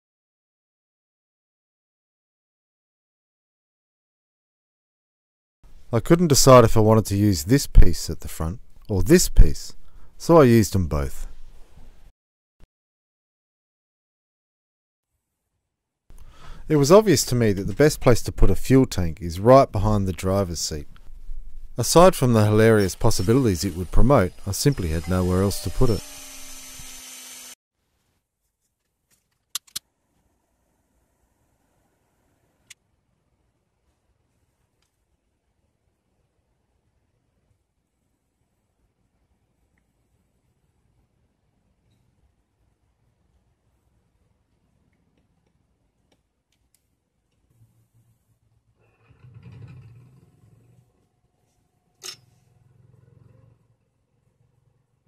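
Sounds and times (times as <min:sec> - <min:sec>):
electric mini drill humming: 0:23.1 - 0:27.6.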